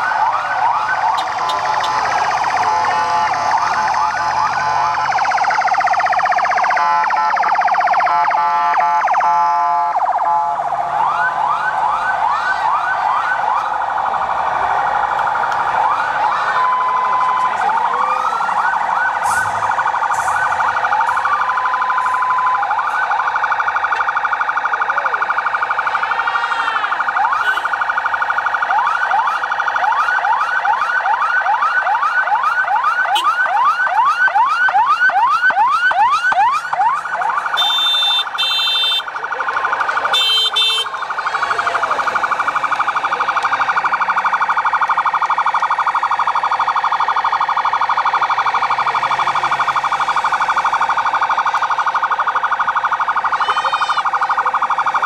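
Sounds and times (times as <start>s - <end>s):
short steady siren tones: 0.0s - 55.0s
siren slow falling wails: 0.0s - 55.0s
siren fast rising yelp: 52.0s - 55.0s.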